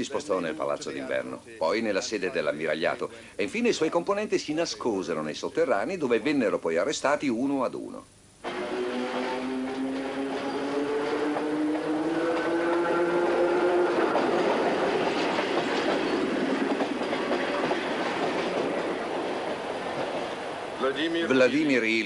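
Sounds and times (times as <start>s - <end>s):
train wheels clattering on rails: 8.4s - 21.2s
pitched train drone: 8.4s - 22.0s.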